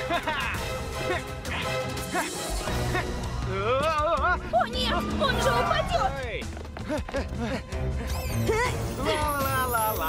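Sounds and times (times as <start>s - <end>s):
cartoon background music: 0.0s - 10.0s.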